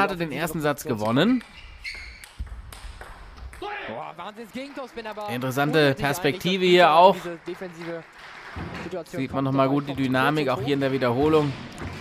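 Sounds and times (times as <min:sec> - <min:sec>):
table tennis ball strike: 0:01.4 - 0:03.8.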